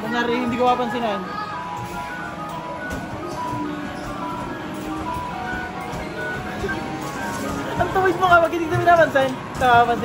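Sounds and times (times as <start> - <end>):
arcade machine jingles and beeps: 0.2 - 10.0.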